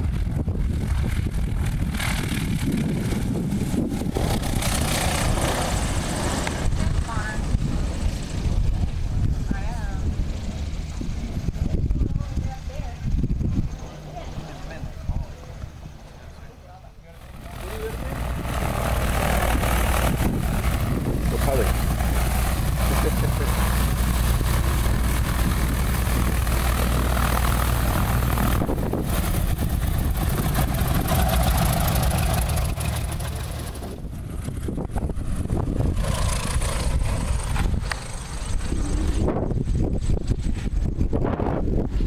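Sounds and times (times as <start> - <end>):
light aircraft engine and propeller: 0.0 - 42.0.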